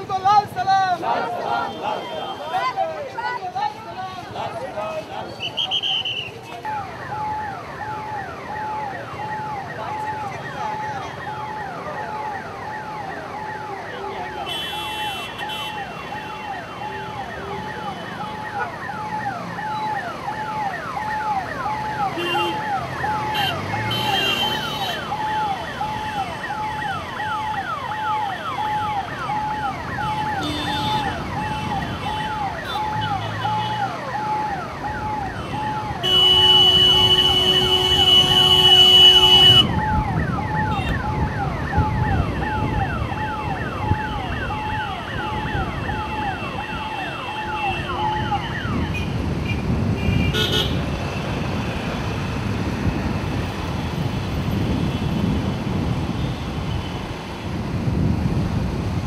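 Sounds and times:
road traffic rumble: 0:00.0 - 0:59.0
electronic vehicle siren wailing: 0:05.4 - 0:49.0
long horn blast: 0:36.0 - 0:39.7
wind on microphone: 0:39.4 - 0:46.9, 0:47.8 - 0:59.0.

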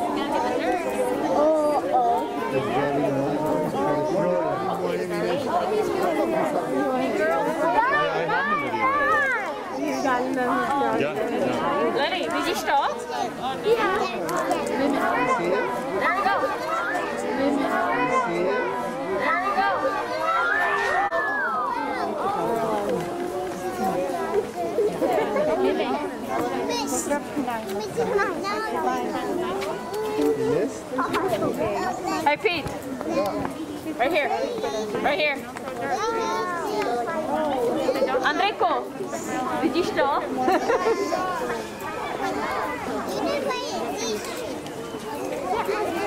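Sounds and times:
overlapping chatter of voices: 0:00.0 - 0:46.0.

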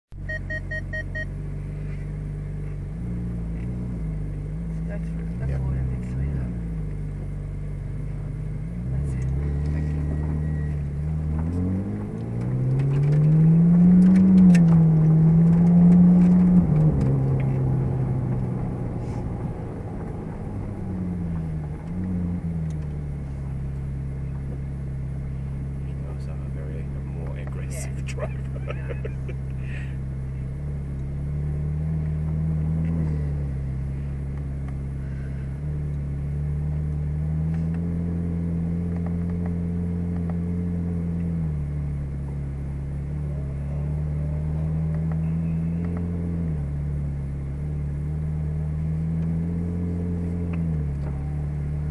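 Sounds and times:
short electronic beeps: 0:00.1 - 0:01.4, 0:09.8 - 0:10.9
car engine from inside cabin: 0:00.1 - 0:51.9.

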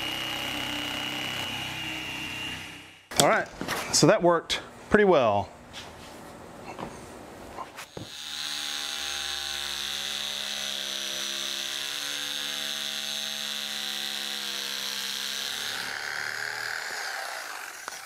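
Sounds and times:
electric knife humming: 0:00.0 - 0:03.1, 0:07.8 - 0:18.0.

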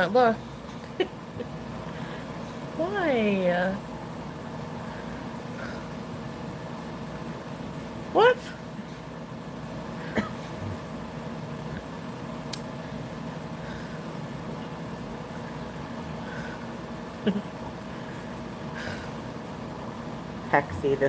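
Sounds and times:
steady electrical hum: 0:00.0 - 0:21.0.

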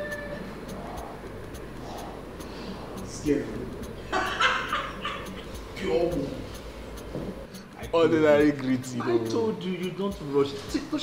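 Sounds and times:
man laughing: 0:04.0 - 0:05.6.

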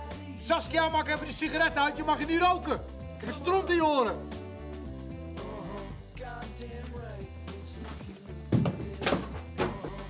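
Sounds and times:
background music: 0:00.0 - 0:10.0
feet thumping on wooden desk: 0:07.9 - 0:09.9.

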